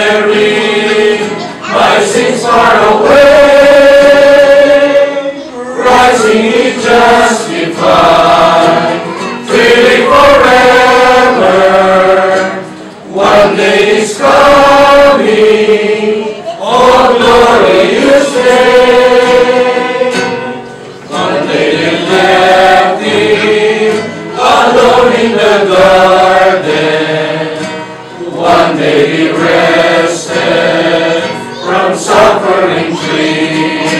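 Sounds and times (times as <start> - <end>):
group singing a slow hymn: 0.0 - 33.9
man leading the singing: 0.0 - 33.9.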